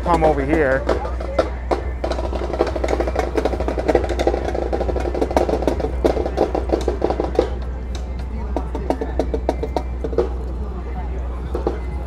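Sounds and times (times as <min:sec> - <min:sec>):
snare drums playing fast: 0:00.0 - 0:07.7.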